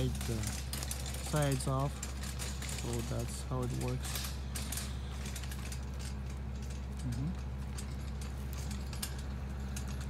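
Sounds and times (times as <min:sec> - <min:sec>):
cart frame clicking and rattling: 0:00.0 - 0:10.0.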